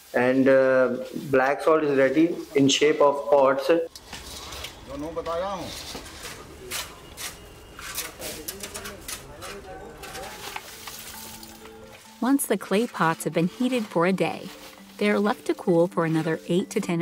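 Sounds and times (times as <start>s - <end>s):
iron rod scraping through coals: 4.0s - 17.0s
faint background music: 4.5s - 17.0s.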